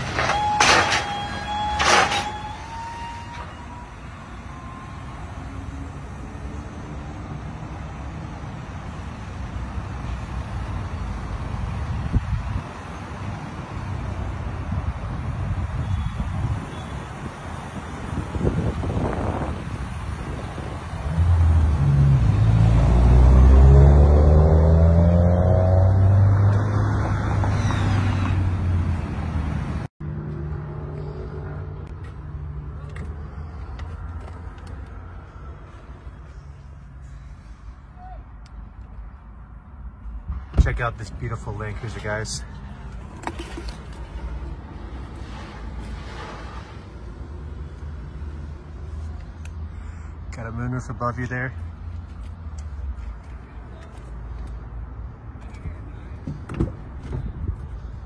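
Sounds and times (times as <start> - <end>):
metal ramp clanks: 0.0 - 2.6
engine and road rumble: 0.0 - 58.0
deep engine rumble rising in pitch: 20.3 - 29.0.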